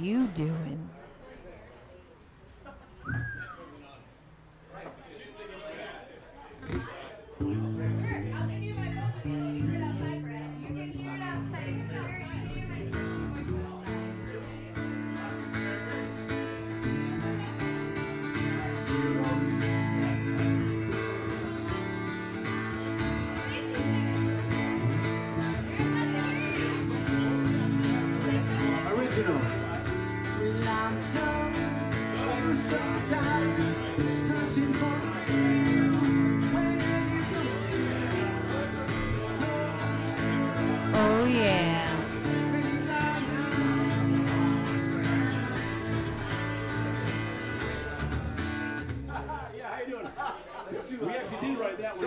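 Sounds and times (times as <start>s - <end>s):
voices: 0.0s - 0.9s, 39.7s - 42.4s
band music with guitar: 6.6s - 49.4s.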